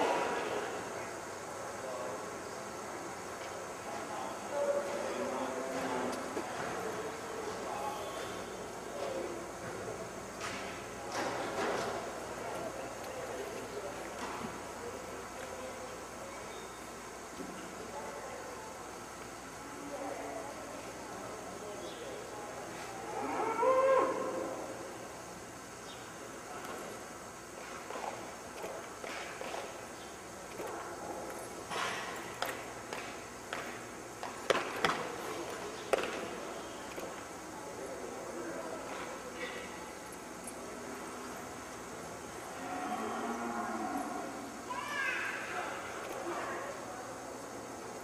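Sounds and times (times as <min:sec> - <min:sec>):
steady background noise: 0:00.0 - 0:48.0.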